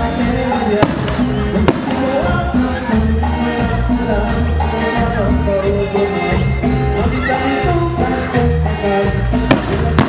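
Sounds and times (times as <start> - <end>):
latin band music: 0.0 - 10.0.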